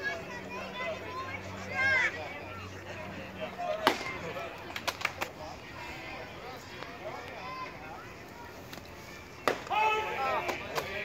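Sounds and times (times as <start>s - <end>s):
voices shouting: 0.0s - 4.7s, 5.4s - 11.0s.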